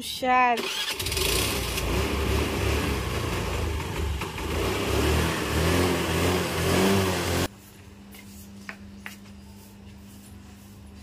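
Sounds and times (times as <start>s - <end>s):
vehicle engine revving: 0.7s - 7.5s.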